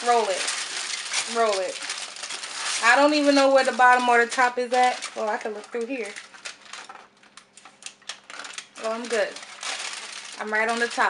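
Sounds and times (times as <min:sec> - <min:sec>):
aluminium foil crinkling: 0:00.0 - 0:11.0.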